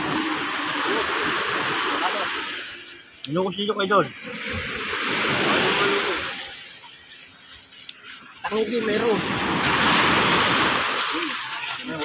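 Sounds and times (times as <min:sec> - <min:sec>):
wave washing up beach: 0:00.0 - 0:12.0.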